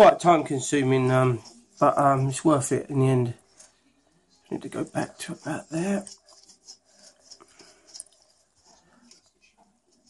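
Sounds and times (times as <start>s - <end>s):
tape rustling and crinkling: 4.5s - 10.0s.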